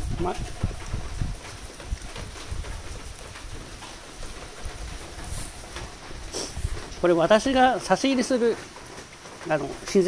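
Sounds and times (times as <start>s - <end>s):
wind rumbling on microphone: 0.0s - 7.8s
rain falling steadily: 0.0s - 10.0s.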